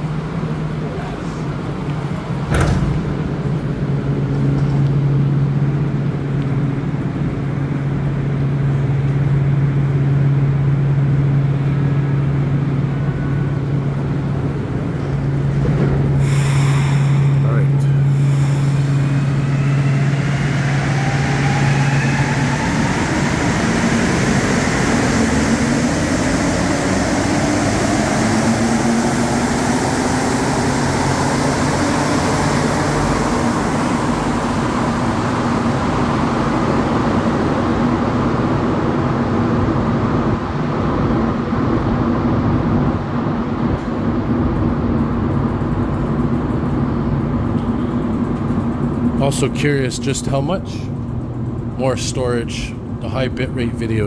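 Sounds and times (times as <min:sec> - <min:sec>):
low rumble and hum: 0:00.0 - 0:54.0
traction motors whining: 0:13.0 - 0:38.0
train hiss: 0:15.9 - 0:37.3.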